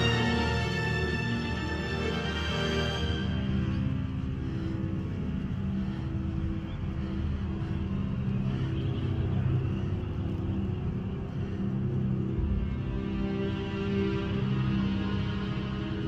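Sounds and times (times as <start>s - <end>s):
dark film score music: 0.0s - 16.0s
deep rumbling undertone: 3.2s - 14.8s.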